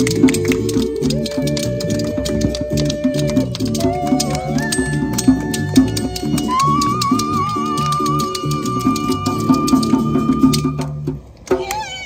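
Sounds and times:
people whooping and cheering: 0:00.0 - 0:10.8
live band music: 0:00.0 - 0:12.0.

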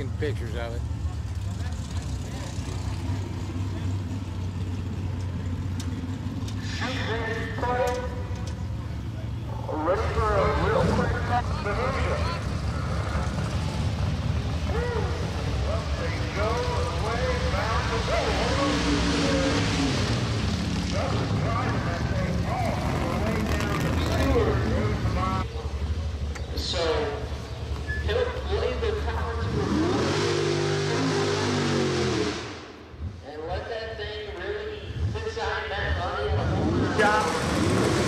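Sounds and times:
low engine rumble: 0:00.0 - 0:29.7.

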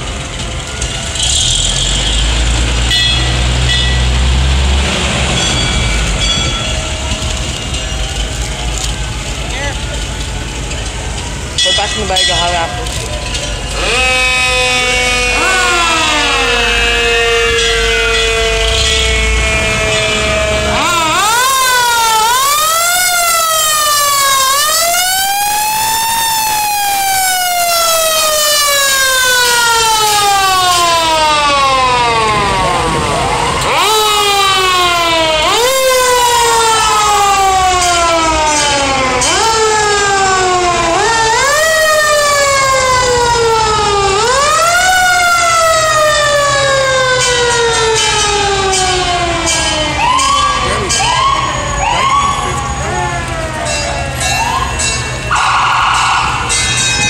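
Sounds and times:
fire truck sirens wailing: 0:00.0 - 0:57.0
short rising siren whoops: 0:13.8 - 0:38.2.

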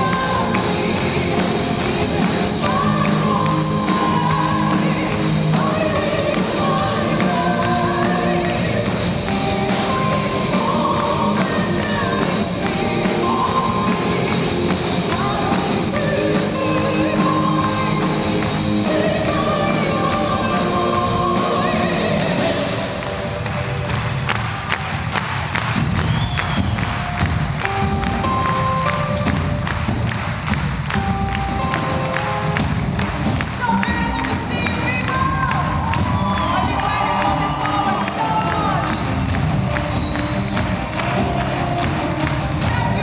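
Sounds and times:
live metal band playing: 0:00.0 - 0:24.2
audience cheering and shouting: 0:33.6 - 0:43.0.

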